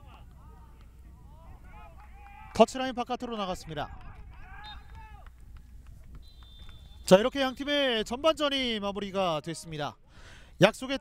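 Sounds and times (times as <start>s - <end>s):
referee's whistle blast: 4.6s - 5.0s, 6.2s - 8.0s.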